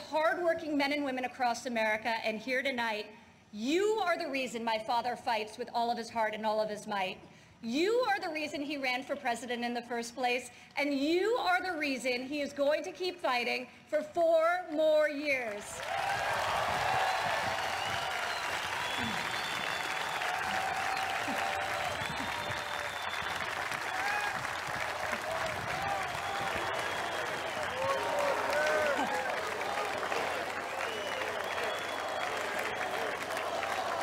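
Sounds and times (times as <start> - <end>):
crowd applauding: 15.7 - 34.0.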